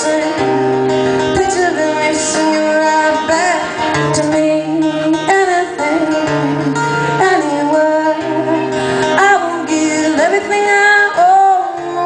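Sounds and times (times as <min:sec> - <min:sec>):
strummed acoustic guitar: 0:00.0 - 0:12.0
woman singing: 0:00.0 - 0:12.0.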